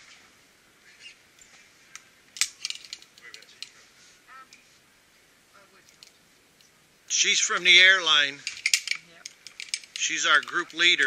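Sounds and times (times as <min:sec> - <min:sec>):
metal carabiner clicks and clinks: 0:02.4 - 0:03.8, 0:08.4 - 0:11.0.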